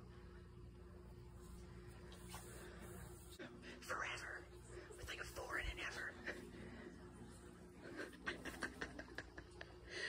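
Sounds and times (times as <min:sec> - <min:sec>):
person whispering: 0:03.7 - 0:06.4.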